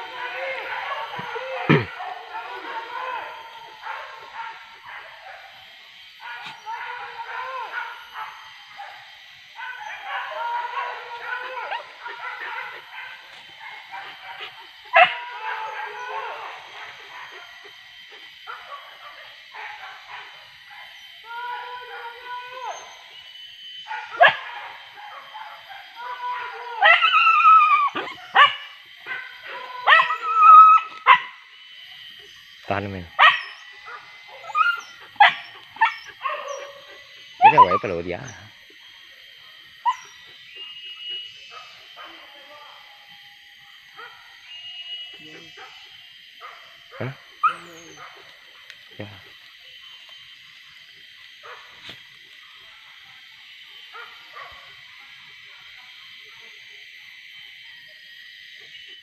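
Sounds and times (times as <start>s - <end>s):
dogs barking and yelping: 0.0s - 42.3s, 43.5s - 55.8s.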